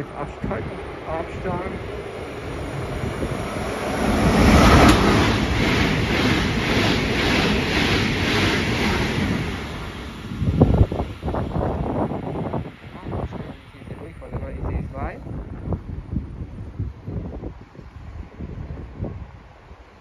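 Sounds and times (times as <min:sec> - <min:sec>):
high-speed train rushing past: 0:00.0 - 0:20.0
train wheels clattering over track: 0:03.7 - 0:09.9.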